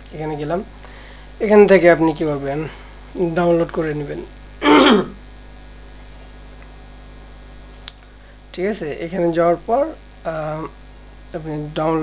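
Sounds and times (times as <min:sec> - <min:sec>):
low electrical mains hum: 0:00.0 - 0:12.0
man clearing his throat: 0:04.6 - 0:05.2
sharp click: 0:07.8 - 0:08.1.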